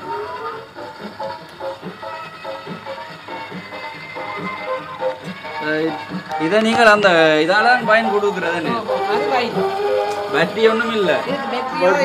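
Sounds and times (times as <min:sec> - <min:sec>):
gramophone record melody: 0:00.0 - 0:12.0.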